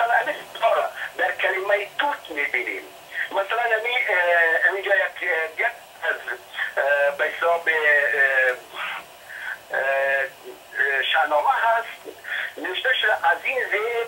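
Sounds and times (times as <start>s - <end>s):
man talking: 3.2s - 9.0s.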